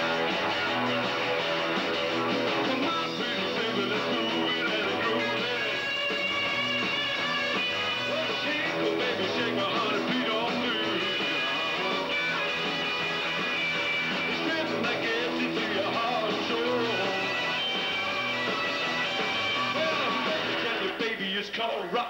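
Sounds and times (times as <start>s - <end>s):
electric bass: 0.0s - 20.8s
steady drum beat: 0.0s - 21.2s
electric guitar: 0.0s - 21.4s.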